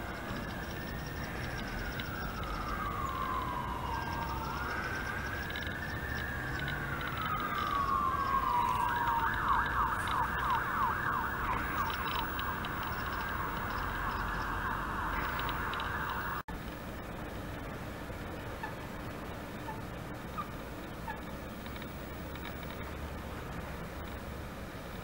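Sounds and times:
emergency vehicle siren: 0:00.0 - 0:16.5
low rumble of traffic: 0:00.0 - 0:25.0.

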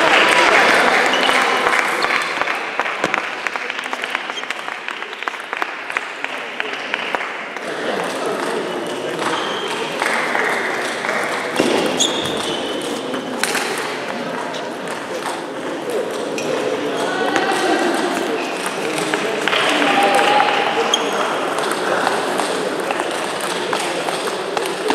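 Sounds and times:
voices in sports hall: 0:00.0 - 0:24.9.

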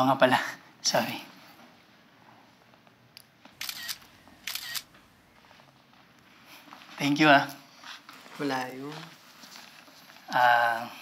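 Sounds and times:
smartphone camera shutter: 0:03.6 - 0:04.9.

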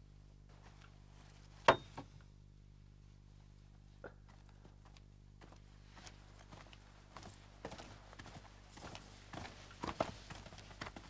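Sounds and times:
footsteps on a hard floor: 0:04.8 - 0:11.0.

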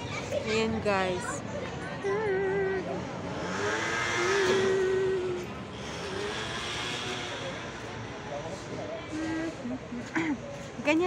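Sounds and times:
car passing: 0:02.8 - 0:09.8.

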